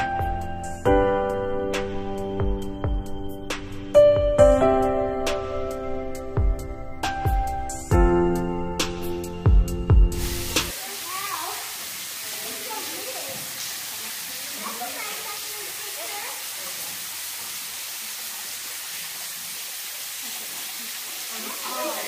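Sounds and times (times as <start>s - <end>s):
piano music with beats: 0.0s - 10.8s
water trickling down rock: 10.2s - 22.0s
faint voices: 21.2s - 22.0s.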